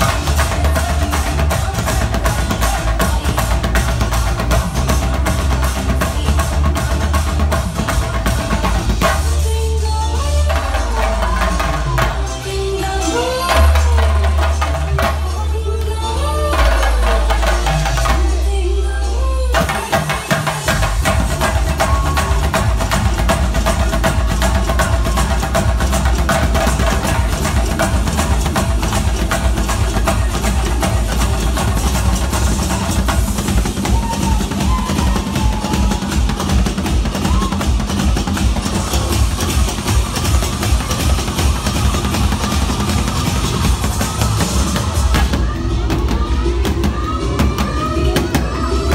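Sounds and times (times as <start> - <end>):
drums played fast with sticks: 0.0 - 18.7, 19.5 - 48.9
dance track with heavy bass beat: 0.0 - 18.8, 19.5 - 48.9.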